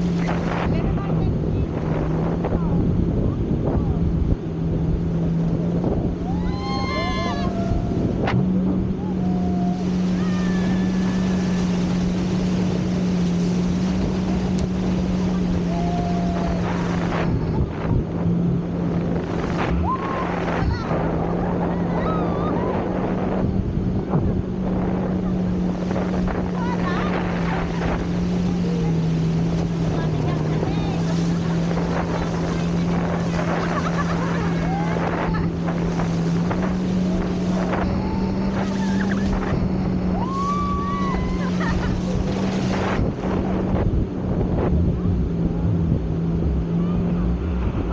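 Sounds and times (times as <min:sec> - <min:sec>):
churning water: 0:00.0 - 0:47.9
motorboat engine droning: 0:00.0 - 0:47.9
wind: 0:00.0 - 0:47.9.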